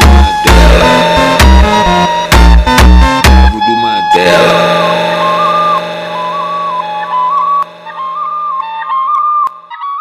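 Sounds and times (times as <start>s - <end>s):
sustained held chord: 0.0s - 9.8s
flute-like lead melody: 0.0s - 10.0s.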